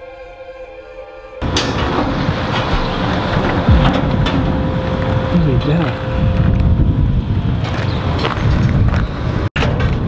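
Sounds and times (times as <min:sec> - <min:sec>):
steady tone: 0:00.9 - 0:07.6
sharp knocks: 0:01.4 - 0:05.3
wind rushing on microphone: 0:01.4 - 0:10.0
electronic music: 0:03.6 - 0:06.4.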